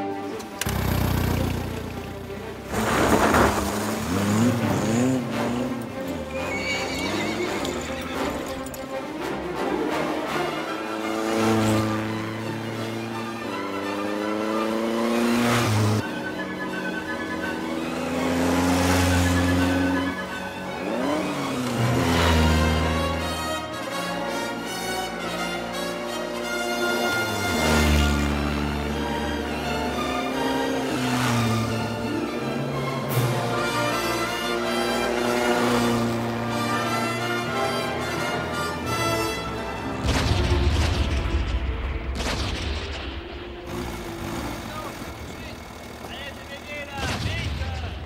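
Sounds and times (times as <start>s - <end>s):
orchestral film score: 0.0s - 47.0s
horse whinnying: 6.2s - 8.7s.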